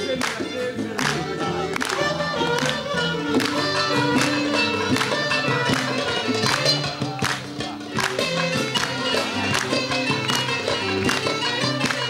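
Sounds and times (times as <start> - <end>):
live band playing instrumental: 0.0 - 12.0.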